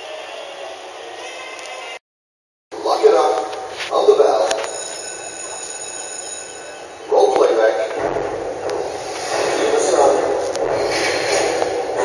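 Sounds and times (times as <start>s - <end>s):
indistinct voices in a room: 2.8s - 12.0s.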